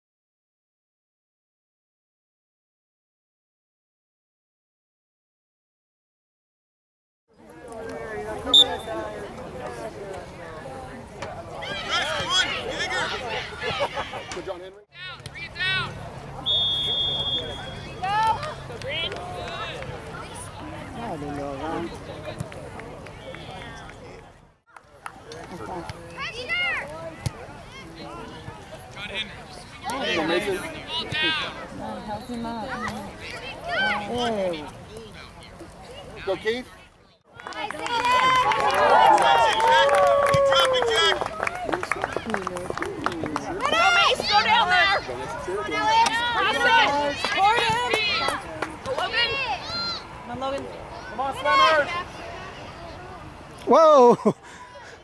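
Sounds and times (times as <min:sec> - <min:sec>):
referee's whistle: 0:08.5 - 0:08.9, 0:16.4 - 0:17.9
voices shouting and calling: 0:11.5 - 0:22.4, 0:43.5 - 0:55.0.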